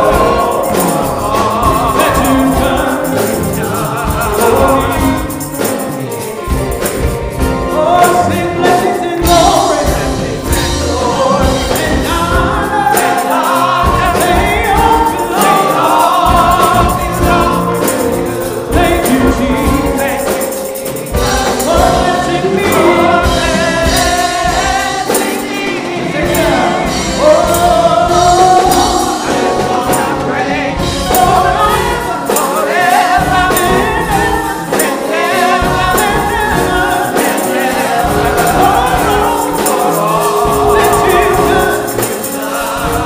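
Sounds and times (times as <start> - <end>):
electronic keyboard: 0.0 - 43.0
gospel choir singing: 0.0 - 43.0.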